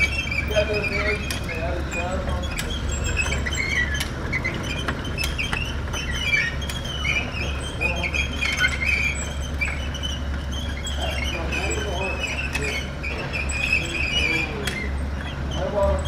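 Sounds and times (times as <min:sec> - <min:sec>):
conveyor motor humming: 0:00.0 - 0:16.0
conveyor squeaking: 0:00.0 - 0:16.0.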